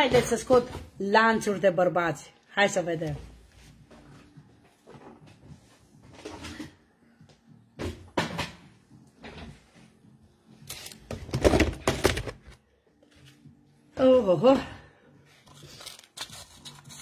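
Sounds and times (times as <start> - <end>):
boxes knocking and clattering: 11.1 - 12.5
plastic packaging rustling: 15.5 - 17.0.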